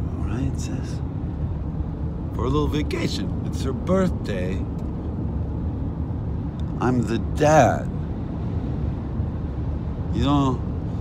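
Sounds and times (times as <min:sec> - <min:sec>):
car engine and tyres rumbling: 0:00.0 - 0:11.0.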